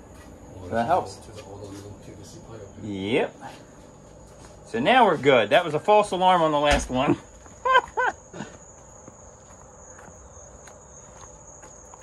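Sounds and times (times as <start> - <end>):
faint footsteps on driveway: 0.0 - 12.0
insects droning: 0.0 - 12.0.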